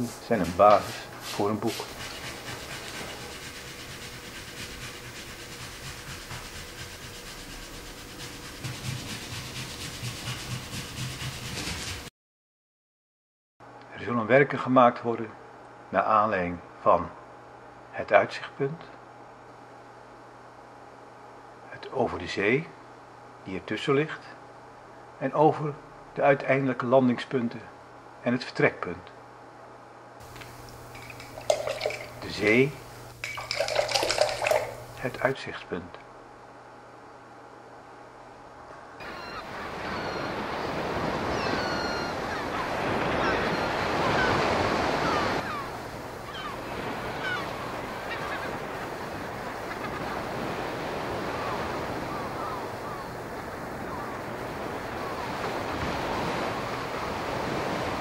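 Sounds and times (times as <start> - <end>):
hiss of moving water: 0.0 - 12.0, 30.2 - 35.4, 43.8 - 58.0
paintbrush scrubbing on paper: 0.0 - 12.1, 30.2 - 35.3
rush of water: 30.3 - 35.3, 42.0 - 58.0.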